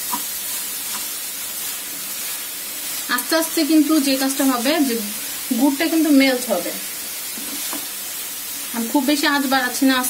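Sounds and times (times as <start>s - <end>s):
food sizzling in a pan: 0.0s - 10.0s
wooden spatula scraping a pan: 7.3s - 8.0s.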